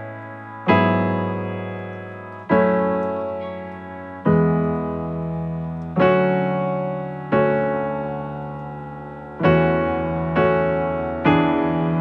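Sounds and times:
keyboard playing slow piano chords: 0:00.0 - 0:12.0.

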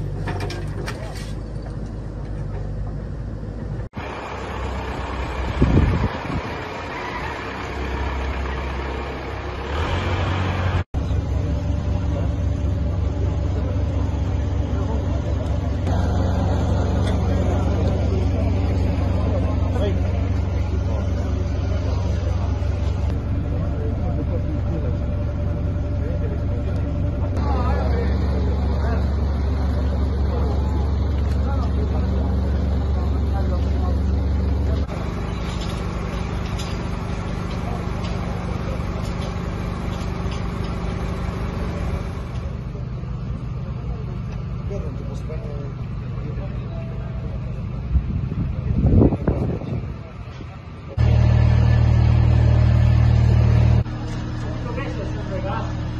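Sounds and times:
deep engine rumble: 0:00.0 - 0:55.9
voices: 0:03.6 - 0:55.9.

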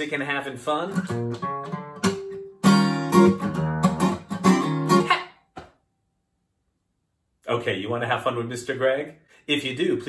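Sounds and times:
acoustic guitar strumming chords: 0:00.9 - 0:05.1.

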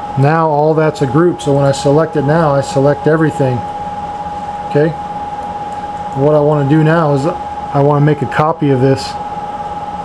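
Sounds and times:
fan-like background hiss: 0:00.0 - 0:10.0
thin constant whine: 0:00.0 - 0:10.0.

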